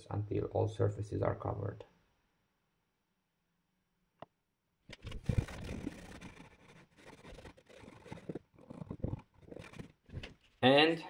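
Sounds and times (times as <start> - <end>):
cloth rubbing on wood: 5.0 - 10.4.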